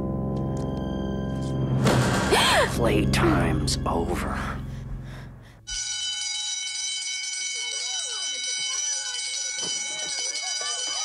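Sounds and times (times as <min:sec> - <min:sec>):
fire alarm ringing: 0:05.7 - 0:11.0
voices calling out: 0:07.2 - 0:11.0.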